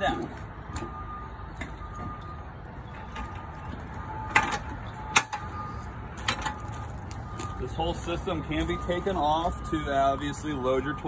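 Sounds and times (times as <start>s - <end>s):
footsteps on metal steps: 6.1s - 9.2s.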